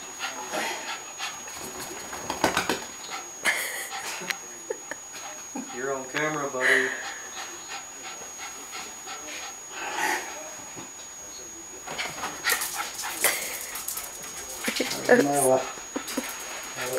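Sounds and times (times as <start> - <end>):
dog panting: 0.0 - 10.6, 11.9 - 16.9.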